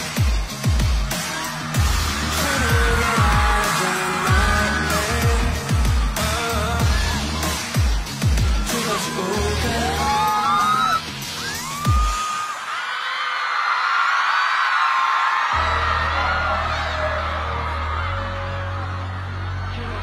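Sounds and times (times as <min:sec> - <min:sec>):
electronic pop music: 0:00.0 - 0:13.2, 0:15.4 - 0:20.0
crowd screaming and cheering: 0:00.0 - 0:20.0
low bass drone: 0:01.8 - 0:03.6, 0:04.3 - 0:08.5.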